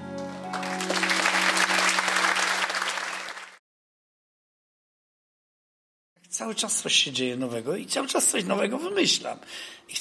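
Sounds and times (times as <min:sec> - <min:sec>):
audience applause: 0:00.0 - 0:03.6.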